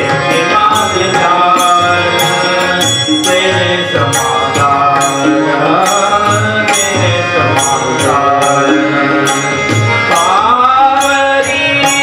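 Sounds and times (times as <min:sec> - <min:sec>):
man singing into microphone: 0:00.0 - 0:12.0
tabla strokes: 0:00.0 - 0:12.0.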